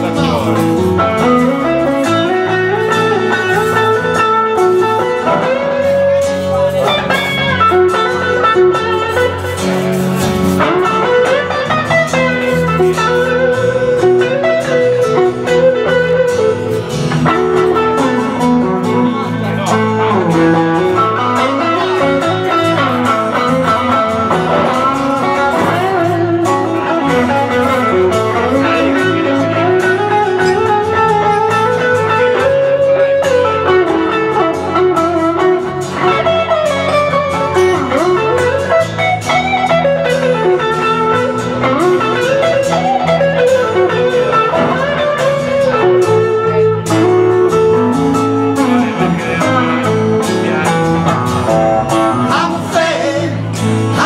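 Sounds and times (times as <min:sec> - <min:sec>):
lead guitar solo with bent notes: 0:00.0 - 0:54.0
strummed acoustic guitar: 0:00.0 - 0:54.0.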